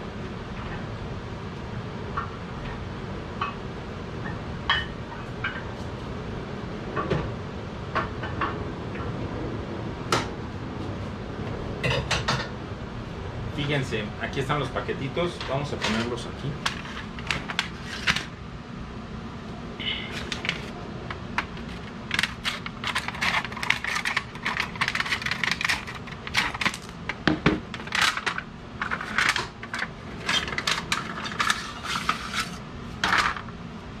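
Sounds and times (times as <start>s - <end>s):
foil crinkling: 21.5s - 27.1s.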